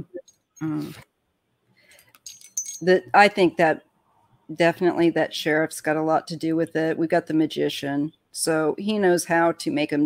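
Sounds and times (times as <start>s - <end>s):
person speaking: 0.0s - 1.0s
light jingling and clicking: 2.1s - 3.0s.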